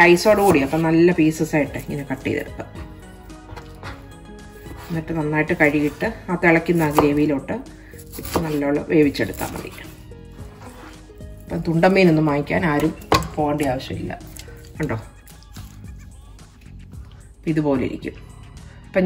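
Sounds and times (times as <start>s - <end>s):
background music: 0.0s - 19.0s
knife chopping raw chicken: 2.4s - 7.4s, 8.0s - 11.1s, 12.6s - 15.9s.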